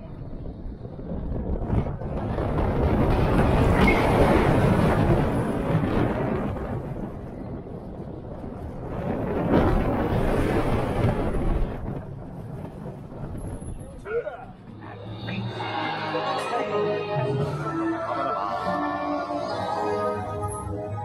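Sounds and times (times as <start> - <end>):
wind rushing over microphone: 0.0 - 16.4
roller coaster rumbling on track: 0.0 - 21.0.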